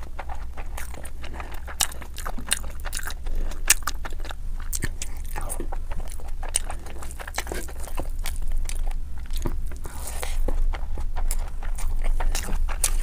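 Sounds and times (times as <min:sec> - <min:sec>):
person chewing: 0:00.0 - 0:13.0
wet mouth sounds: 0:00.0 - 0:13.0.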